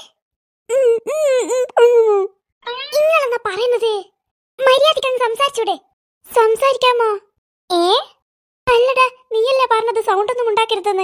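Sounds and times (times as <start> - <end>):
high-pitched cartoon voice: 1.8 - 4.8.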